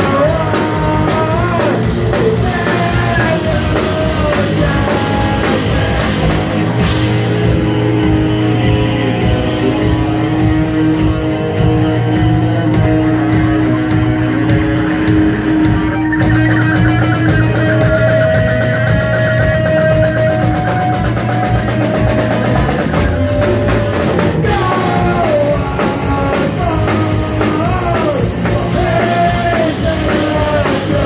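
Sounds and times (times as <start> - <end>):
bass guitar: 0.0 - 31.0
distorted electric guitars: 0.0 - 31.0
drum kit: 0.0 - 31.0.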